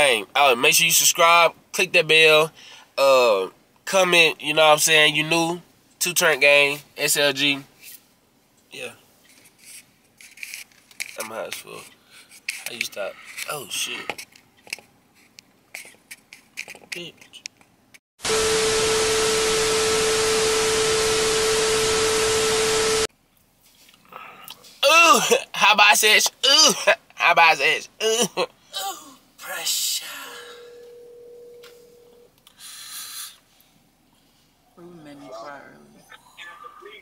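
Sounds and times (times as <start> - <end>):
steady single-pitched tone: 18.3 - 23.1, 30.4 - 32.3
short breathy hisses: 32.5 - 33.5.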